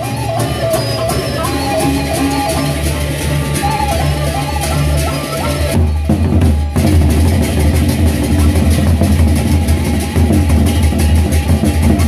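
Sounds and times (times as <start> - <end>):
barrel drums fast rhythm: 0.0 - 12.0
cymbals clattering: 0.0 - 12.0.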